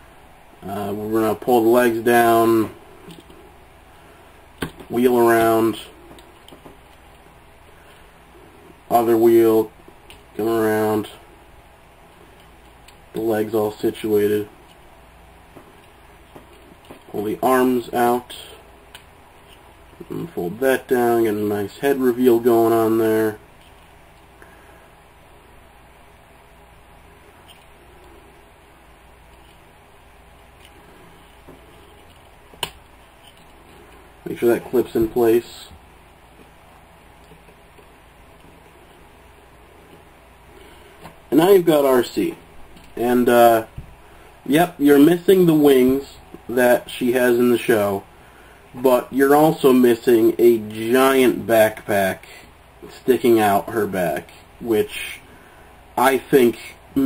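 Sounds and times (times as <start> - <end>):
quiet handling: 0.0 - 46.8.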